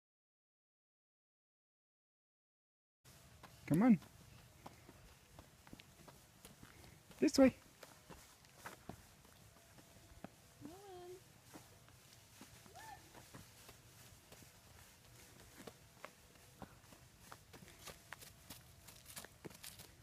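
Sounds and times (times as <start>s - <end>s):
toddler footsteps on asphalt: 3.1s - 20.0s
toddler voiced sounds: 10.6s - 11.2s.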